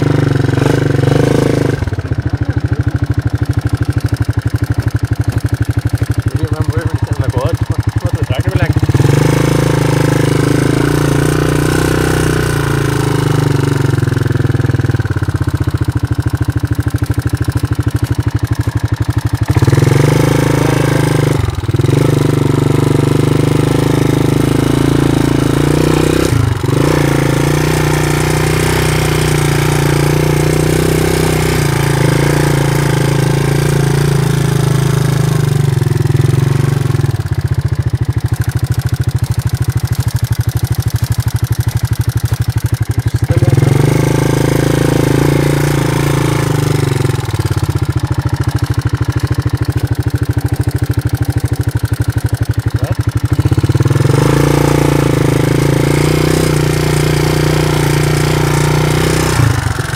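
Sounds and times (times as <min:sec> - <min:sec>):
quad engine running: 0:00.0 - 0:59.9.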